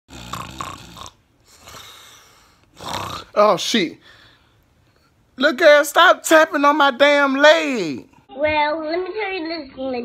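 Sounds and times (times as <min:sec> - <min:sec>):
person snoring: 0:00.1 - 0:03.4.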